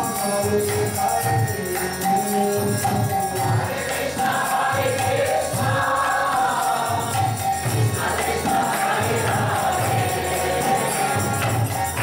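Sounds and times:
harmonium: 0.0s - 12.0s
jingling percussion: 0.0s - 12.0s
steady low drum beat: 2.8s - 12.0s
group chanting: 3.6s - 12.0s.

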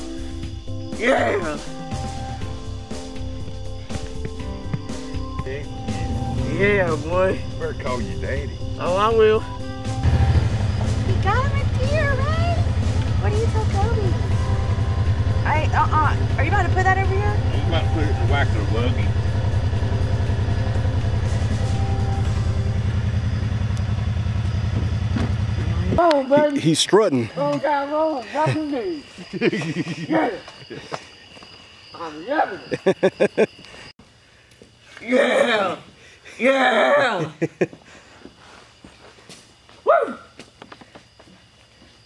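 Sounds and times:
utility vehicle engine idling: 1.9s - 26.0s.

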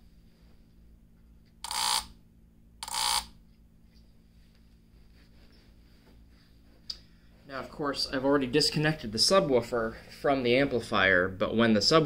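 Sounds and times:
faint steady hum: 0.0s - 12.0s
transformer buzzing: 1.6s - 2.2s, 2.8s - 3.4s.

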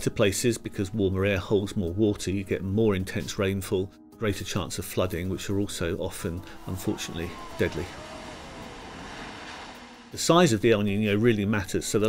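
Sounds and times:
faint falling tone: 6.4s - 10.5s
floodwater torrent rushing: 6.4s - 10.5s.

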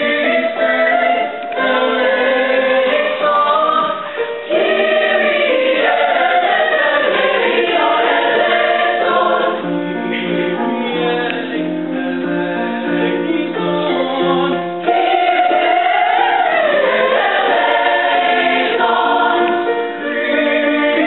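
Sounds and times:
mixed choir singing: 0.0s - 21.0s.

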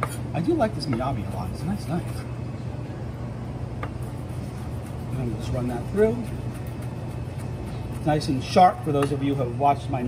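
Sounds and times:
low kitchen hum: 0.0s - 10.0s.

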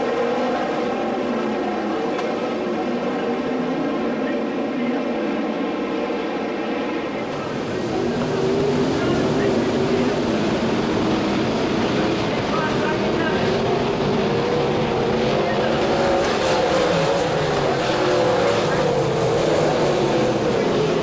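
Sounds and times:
race car engines at high revs: 0.0s - 21.0s.

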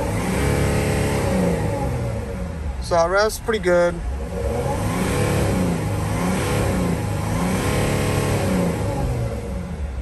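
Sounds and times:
diesel engine revving: 0.0s - 10.0s.

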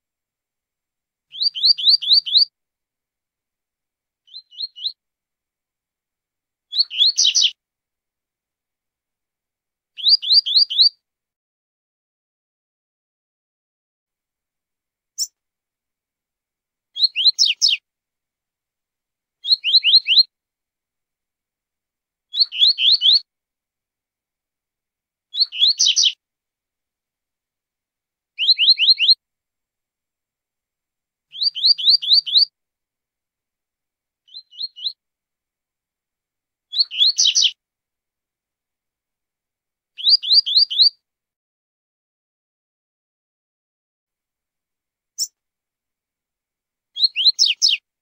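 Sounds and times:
bird singing high phrases: 1.3s - 2.5s, 4.2s - 5.0s, 6.7s - 7.6s, 10.0s - 11.0s, 17.0s - 17.8s, 19.4s - 20.3s, 22.3s - 23.3s, 25.3s - 26.2s, 28.4s - 29.2s, 31.3s - 32.5s, 34.3s - 35.0s, 36.7s - 37.6s, 40.0s - 41.0s, 47.0s - 47.8s.

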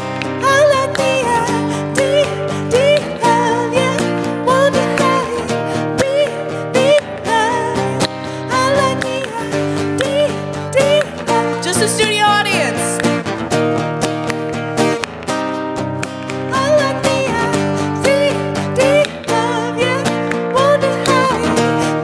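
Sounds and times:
woman singing: 0.0s - 13.2s, 16.3s - 22.0s
acoustic guitar strumming chords: 0.0s - 22.0s.

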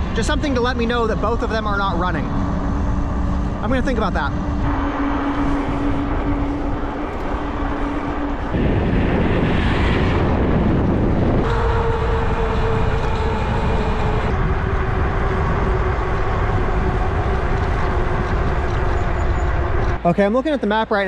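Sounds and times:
electric motor whine: 0.0s - 20.0s
wind rushing over microphone: 0.0s - 20.1s
car passing: 0.0s - 20.9s.

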